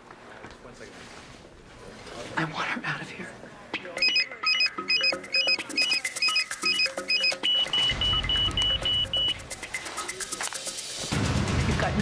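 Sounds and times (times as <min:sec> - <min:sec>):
single electronic beeps: 0:04.0 - 0:09.4
synthesized blips: 0:04.0 - 0:09.8
fast ticking beat: 0:04.0 - 0:11.2.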